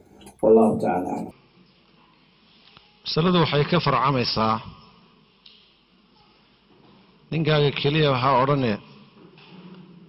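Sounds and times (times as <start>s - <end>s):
man's voice: 0.2s - 1.3s.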